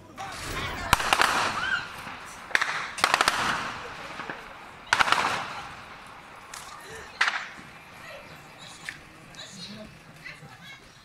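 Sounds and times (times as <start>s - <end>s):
gunshots echoing: 0.0s - 10.2s
background voices: 0.0s - 11.0s.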